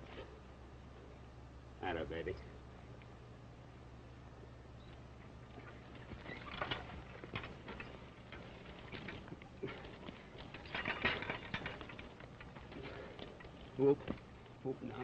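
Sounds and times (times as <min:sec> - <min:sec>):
old film soundtrack hum: 0:00.0 - 0:15.0
horses shuffling on dirt: 0:02.4 - 0:15.0.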